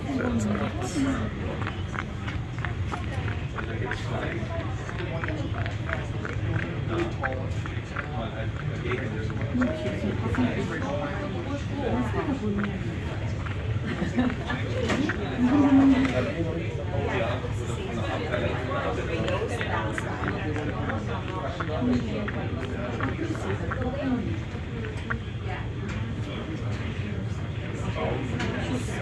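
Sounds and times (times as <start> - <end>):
indistinct chatter of passengers: 0.0 - 29.0
people talking: 0.0 - 29.0.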